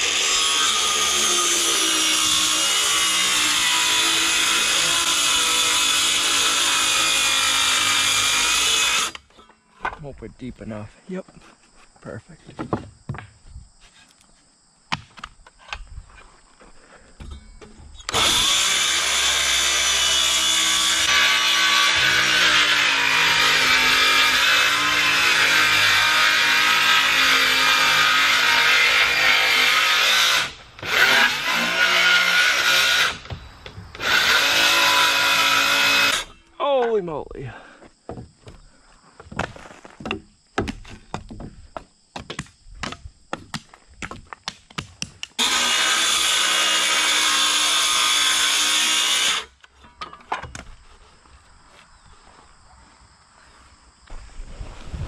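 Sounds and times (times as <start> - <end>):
circular saw cutting wood: 0.0 - 9.3, 18.0 - 36.4, 45.4 - 49.6
boards knocking: 12.4 - 13.4, 38.0 - 38.6, 39.2 - 45.3.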